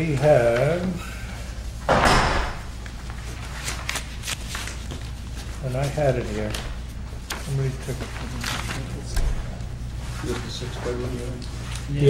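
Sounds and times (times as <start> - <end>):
faint clicks and rustles: 2.7 - 12.0.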